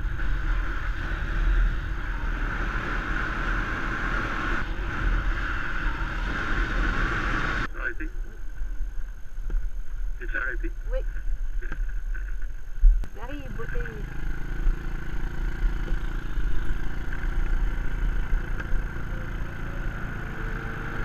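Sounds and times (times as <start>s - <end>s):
motorbike engine rumble: 0.0s - 10.4s, 11.1s - 21.0s.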